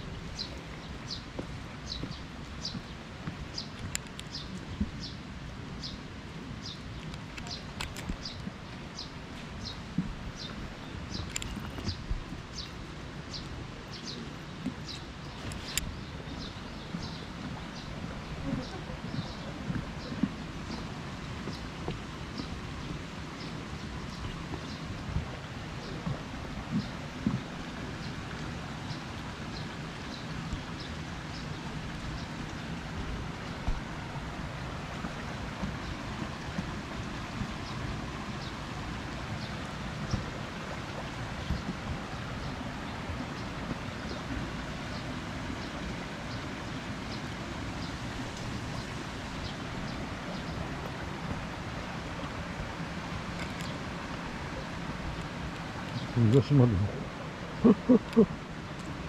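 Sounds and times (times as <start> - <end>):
rain: 0.0 - 59.0
stream water running: 0.0 - 59.0.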